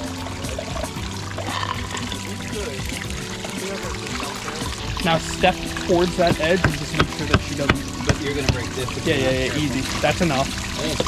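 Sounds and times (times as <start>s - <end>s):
background music: 0.0s - 11.0s
water trickling over rocks: 0.0s - 11.0s.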